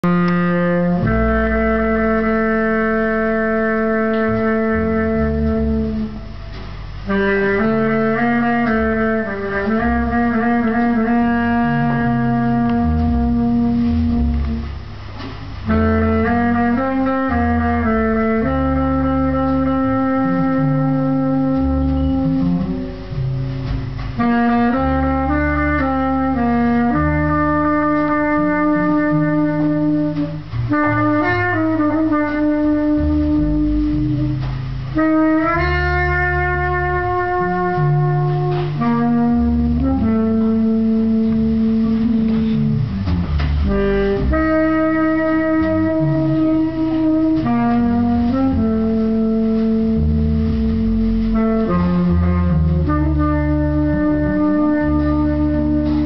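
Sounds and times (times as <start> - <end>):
double bass line: 0.0 - 56.0
slow jazz melody: 0.0 - 56.0.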